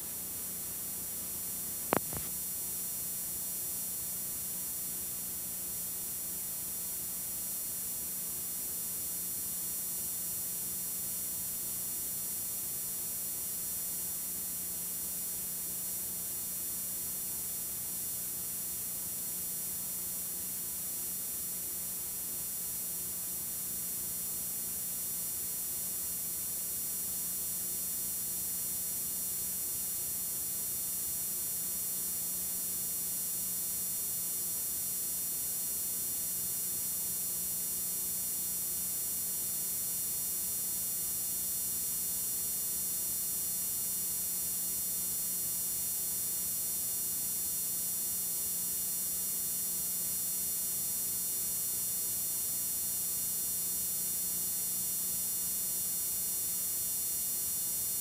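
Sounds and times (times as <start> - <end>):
electrical hum: 0.0 - 2.4
faint tape hiss: 1.5 - 2.4.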